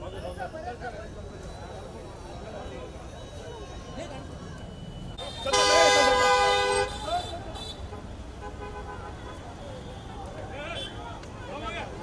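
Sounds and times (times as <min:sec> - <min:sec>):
crowd chatter: 0:00.0 - 0:12.0
street traffic: 0:00.0 - 0:12.0
vehicle horn blast: 0:05.2 - 0:09.4.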